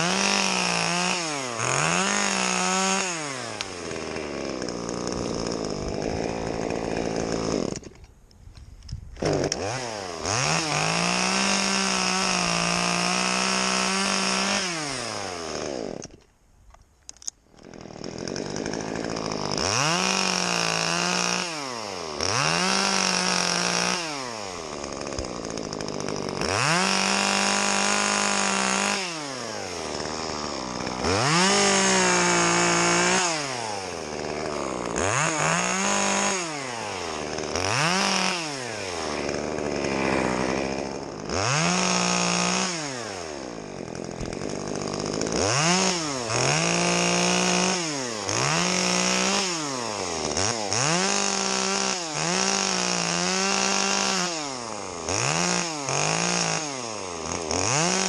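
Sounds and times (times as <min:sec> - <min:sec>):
chainsaw revving while cutting: 0:00.0 - 0:07.9, 0:09.2 - 0:16.2, 0:17.6 - 0:58.0.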